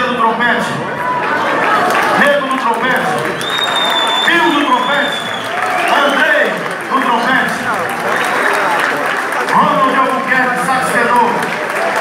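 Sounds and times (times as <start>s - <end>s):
audience applauding: 1.1s - 12.0s.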